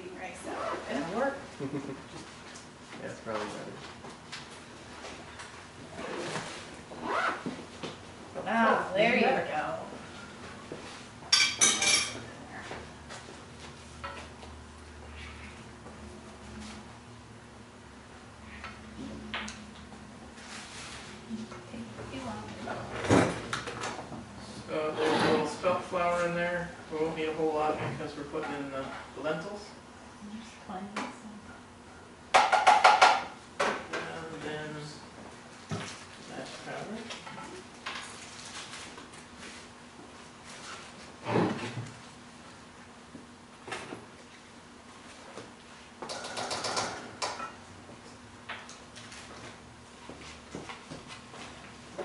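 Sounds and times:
utensil knocking on frying pan: 0:32.3 - 0:33.3.

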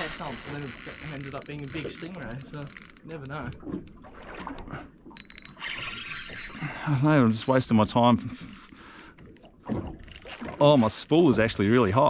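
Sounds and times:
fishing reel drag buzzing: 0:05.2 - 0:06.6.

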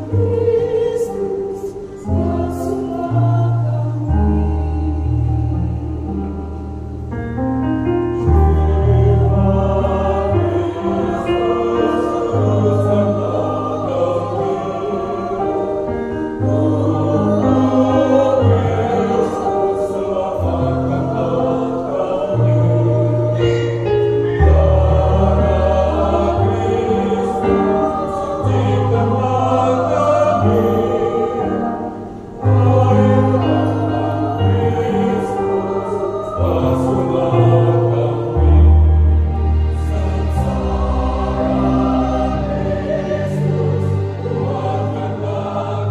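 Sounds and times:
choir singing a hymn: 0:00.0 - 0:45.9.

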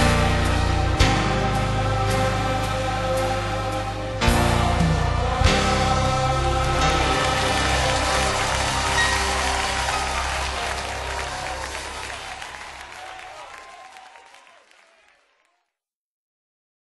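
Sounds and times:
choir sustained final chord: 0:00.0 - 0:13.4
audience applause and cheering: 0:00.0 - 0:15.7.

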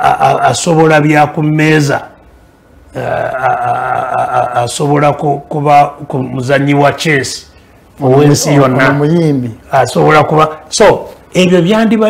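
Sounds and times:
man's drawn-out hesitation sound: 0:00.0 - 0:12.0.

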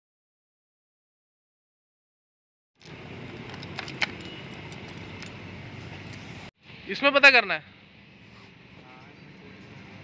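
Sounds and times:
key ring jingling: 0:03.6 - 0:05.2.

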